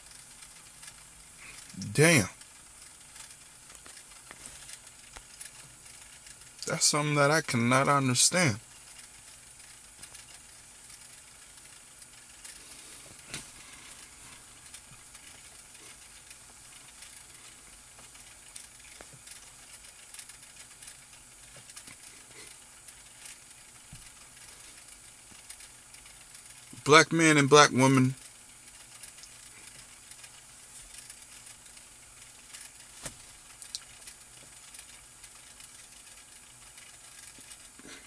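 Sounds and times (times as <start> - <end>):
small clicks: 0.0 - 1.8, 2.4 - 6.7, 8.7 - 26.9, 28.1 - 38.0
faint steady hiss: 0.0 - 38.0
man's voice: 1.8 - 2.4, 6.6 - 8.6, 26.8 - 28.2.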